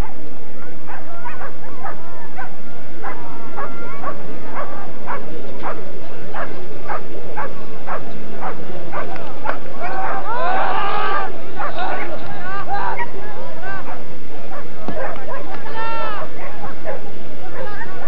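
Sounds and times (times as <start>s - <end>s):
dogs barking and yelping: 0.0s - 18.0s.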